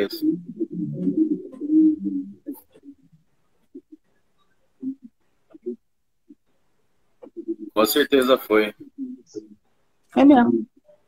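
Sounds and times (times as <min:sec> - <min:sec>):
person murmuring closed-mouth: 0:00.0 - 0:03.1, 0:07.2 - 0:09.6.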